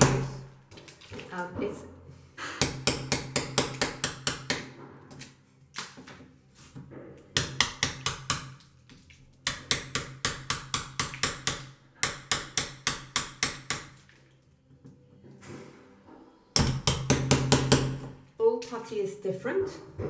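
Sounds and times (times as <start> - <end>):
hammer tapping a knife: 9.5 - 13.9.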